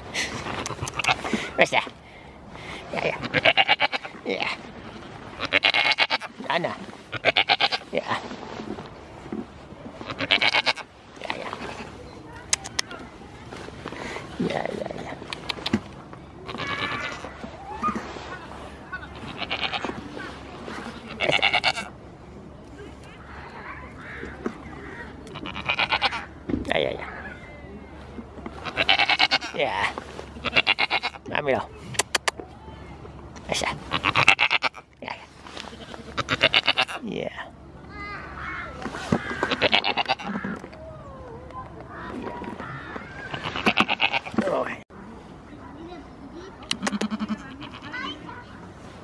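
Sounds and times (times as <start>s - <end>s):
goat bleating: 0.5s - 1.3s, 3.0s - 4.2s, 5.4s - 6.3s, 7.1s - 8.0s, 10.0s - 10.9s, 16.4s - 17.2s, 19.0s - 20.0s, 21.0s - 21.9s, 25.2s - 26.3s, 28.6s - 29.6s, 30.4s - 31.2s, 33.9s - 34.9s, 35.6s - 37.0s, 39.2s - 40.7s, 43.3s - 44.4s, 46.7s - 48.2s.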